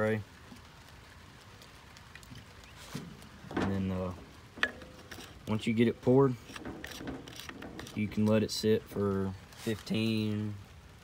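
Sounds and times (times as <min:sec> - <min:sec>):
faint steady background: 0:00.0 - 0:11.0.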